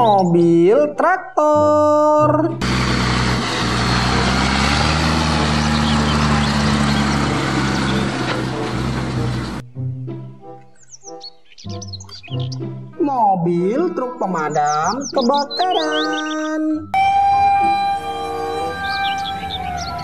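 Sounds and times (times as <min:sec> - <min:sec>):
birds chirping: 0:00.0 - 0:01.6, 0:02.6 - 0:09.6, 0:10.5 - 0:12.9, 0:13.6 - 0:20.0
background music: 0:00.0 - 0:20.0
tractor and baler engine droning: 0:02.6 - 0:09.6, 0:17.0 - 0:20.0.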